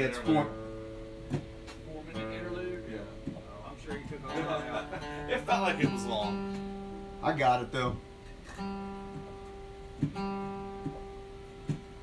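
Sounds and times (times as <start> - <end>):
guitar note ringing: 0.0 - 12.0.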